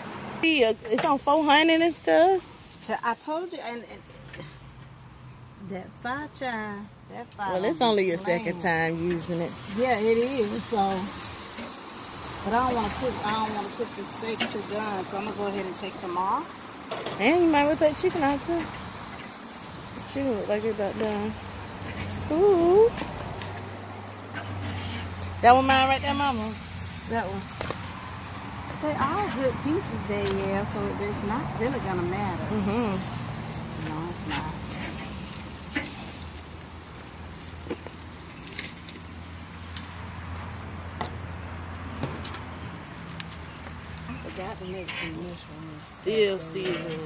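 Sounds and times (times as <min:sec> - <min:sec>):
meat sizzling on a grill: 0:00.4 - 0:41.8, 0:42.8 - 0:47.0.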